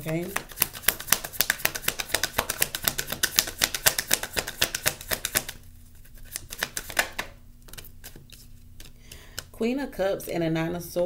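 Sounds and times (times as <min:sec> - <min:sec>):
cards being shuffled: 0:00.0 - 0:09.5.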